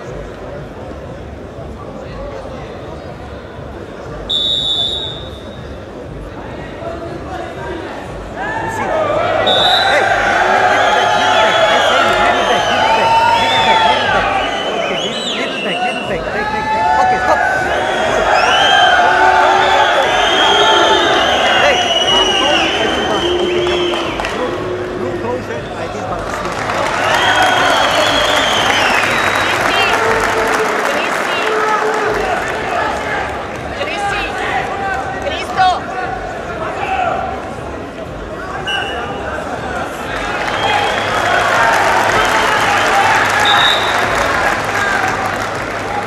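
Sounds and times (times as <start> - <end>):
crowd shouting and cheering: 3.1 - 46.0
long high whistle: 4.3 - 5.6, 42.2 - 44.1.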